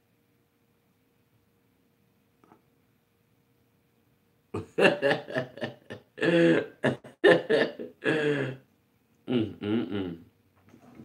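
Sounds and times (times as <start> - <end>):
man laughing: 4.6 - 8.6.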